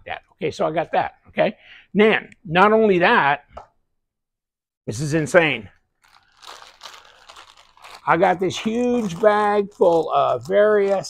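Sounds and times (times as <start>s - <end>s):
plastic bag crinkling: 6.0s - 11.0s.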